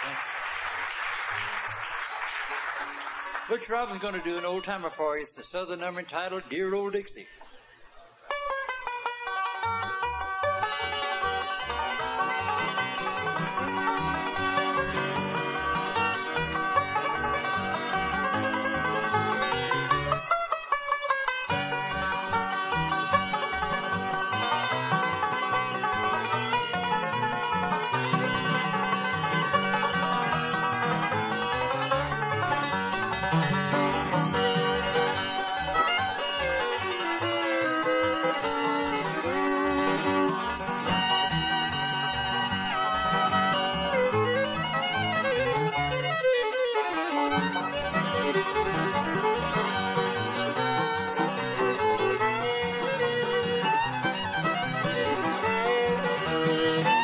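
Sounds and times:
banjo picking fast lead: 0:00.0 - 0:07.2, 0:08.2 - 0:57.0
guitar: 0:01.0 - 0:57.0
sliding fiddle notes: 0:03.3 - 0:07.2, 0:08.3 - 0:57.0
upright bass: 0:21.6 - 0:45.9.

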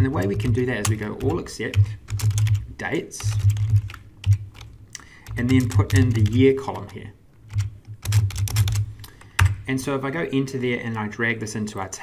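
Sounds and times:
computer keyboard typing: 0:00.0 - 0:09.6.

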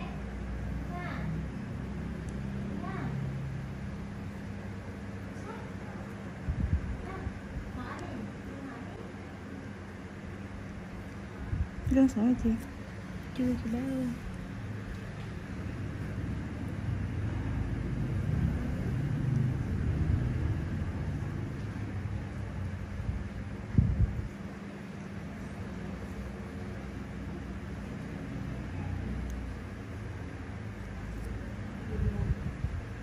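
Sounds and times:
faint hum: 0:00.0 - 0:33.0
low background rumble: 0:00.0 - 0:33.0.

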